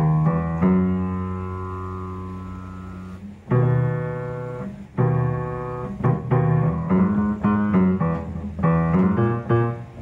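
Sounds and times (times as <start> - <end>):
piano chord ringing: 0.0 - 10.0.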